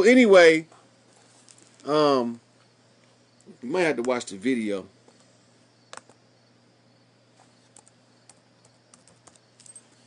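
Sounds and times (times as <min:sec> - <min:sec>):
low steady hum: 0:00.0 - 0:10.0
faint computer keyboard clicks: 0:05.9 - 0:06.2, 0:07.8 - 0:09.4.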